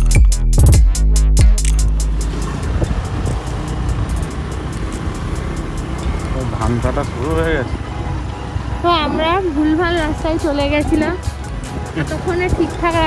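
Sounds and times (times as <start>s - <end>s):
vehicle road noise: 0.0s - 13.0s.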